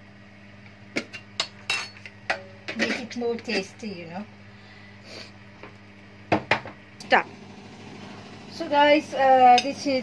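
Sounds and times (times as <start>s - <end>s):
knocks against a plastic bowl: 6.3s - 6.8s.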